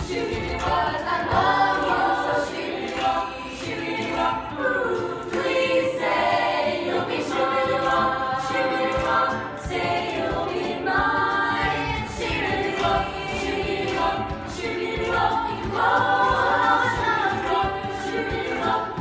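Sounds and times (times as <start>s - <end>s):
girls singing as a choir: 0.0s - 19.0s.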